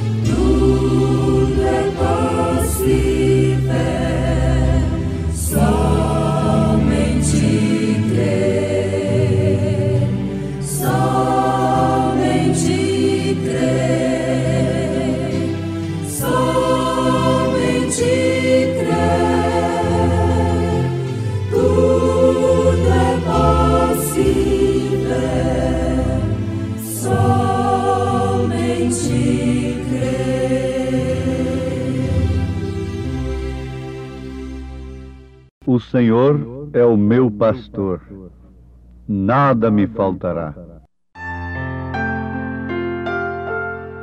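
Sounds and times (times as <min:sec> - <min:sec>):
choir singing a hymn: 0:00.0 - 0:34.4
sustained low accompaniment: 0:35.6 - 0:40.8.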